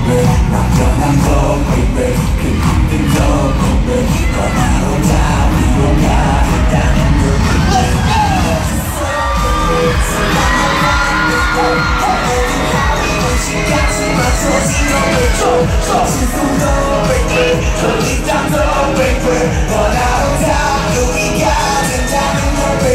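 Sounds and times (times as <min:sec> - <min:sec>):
crowd cheering and screaming: 0:00.0 - 0:22.9
high wavering crowd voices: 0:00.0 - 0:22.9
loud pop music over speakers: 0:00.0 - 0:22.9.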